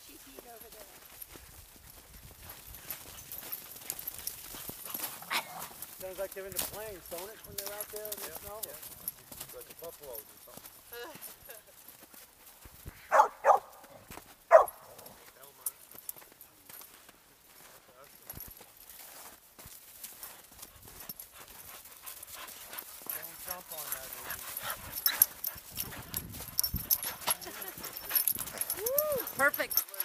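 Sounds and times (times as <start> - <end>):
dogs running through snow: 0.0 - 30.0
dog barking: 13.1 - 13.9, 14.5 - 15.2.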